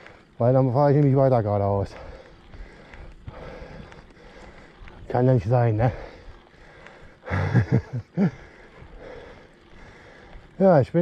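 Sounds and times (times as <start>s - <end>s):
bicycle riding noise: 0.0s - 11.0s
man laughing breathily: 7.0s - 9.5s.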